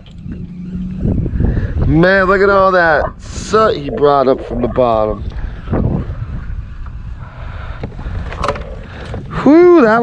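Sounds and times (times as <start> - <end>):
wind and water around kayak: 0.0 - 10.0.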